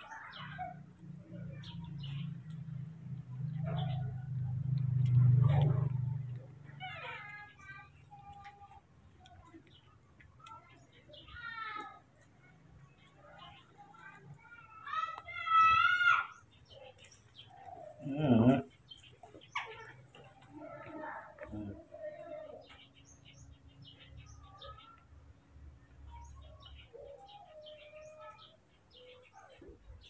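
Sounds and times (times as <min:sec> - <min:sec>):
lower voice sound: 0:18.0 - 0:18.7, 0:21.4 - 0:22.6.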